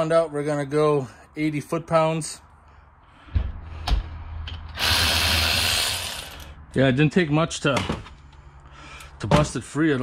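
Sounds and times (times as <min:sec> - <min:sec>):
electric ratchet motor running: 0:04.7 - 0:06.6.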